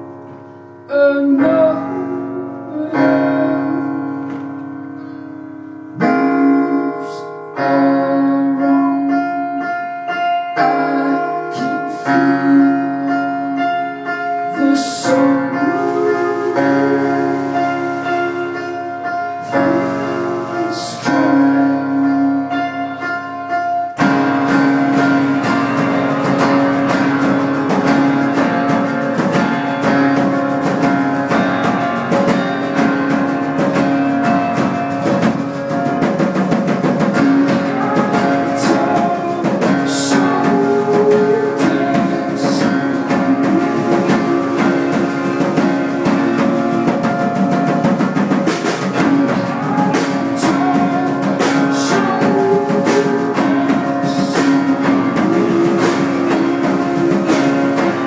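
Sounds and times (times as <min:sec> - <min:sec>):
held keyboard chord: 0:00.0 - 0:58.0
live band playing: 0:07.6 - 0:58.0
strummed acoustic guitar: 0:09.1 - 0:58.0.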